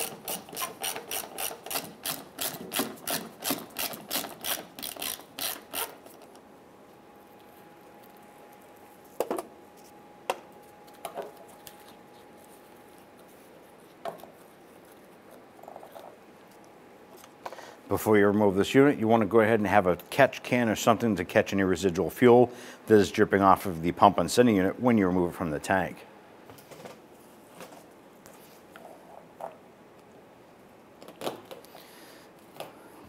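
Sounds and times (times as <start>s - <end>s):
hand ratchet clicking: 0.0s - 6.0s.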